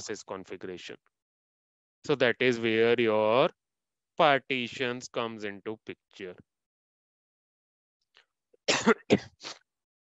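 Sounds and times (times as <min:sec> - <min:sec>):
man coughing: 0:08.7 - 0:09.5.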